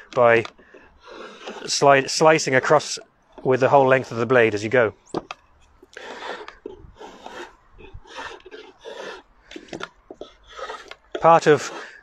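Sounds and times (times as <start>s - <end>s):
draw knife scraping wood: 0.0s - 12.0s.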